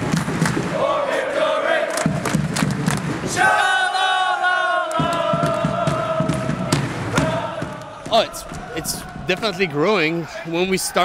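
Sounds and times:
crowd chanting: 0:00.0 - 0:11.0
drum beating: 0:01.9 - 0:03.9, 0:04.8 - 0:10.1.

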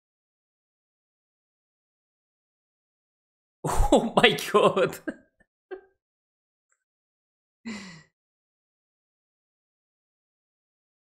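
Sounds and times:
man exclaiming: 0:03.7 - 0:05.1
man chuckling: 0:03.7 - 0:05.2.

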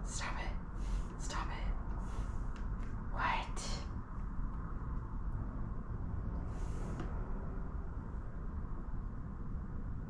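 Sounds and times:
woman whispering: 0:00.0 - 0:02.4, 0:03.0 - 0:03.9
low room hum: 0:00.0 - 0:10.0.

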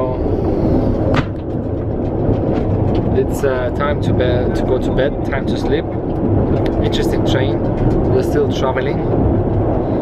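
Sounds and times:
train running low rumble: 0:00.0 - 0:10.0
man talking: 0:03.1 - 0:05.9, 0:06.7 - 0:09.1.

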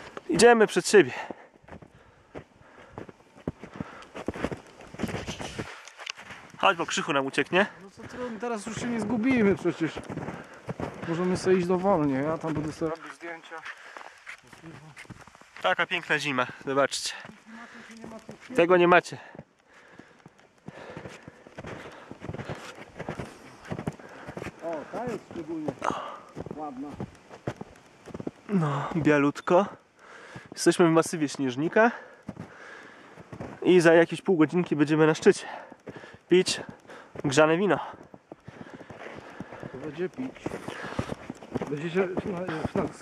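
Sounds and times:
footsteps crunching in snow: 0:00.0 - 0:43.0.

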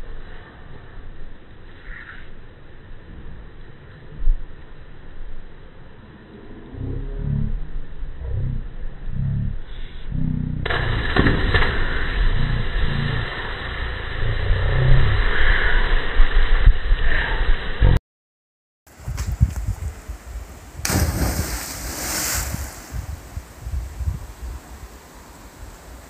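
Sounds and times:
deep slowed voices: 0:05.8 - 0:11.2, 0:12.0 - 0:18.0
low rushing splash: 0:19.8 - 0:26.0.

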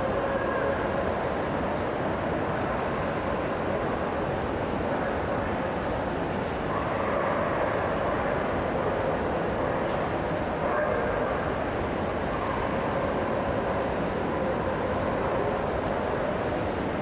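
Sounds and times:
murmur of voices: 0:00.0 - 0:17.0.

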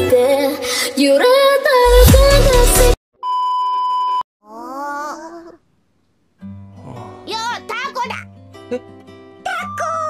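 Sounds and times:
steady test tone beep: 0:03.2 - 0:04.2.

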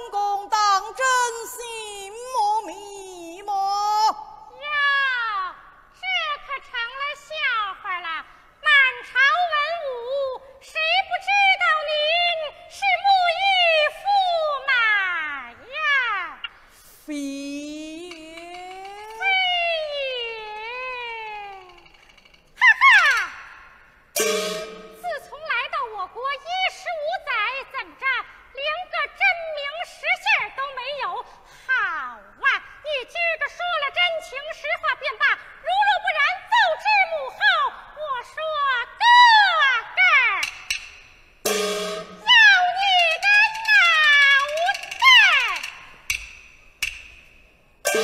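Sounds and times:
woman's high voice reciting: 0:00.0 - 0:21.8, 0:24.8 - 0:40.4, 0:42.2 - 0:45.7.

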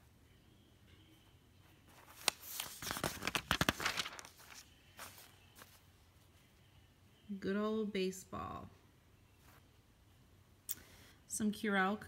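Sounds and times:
paper rustling and crinkling: 0:01.9 - 0:05.8
paper snap: 0:02.1 - 0:04.6.

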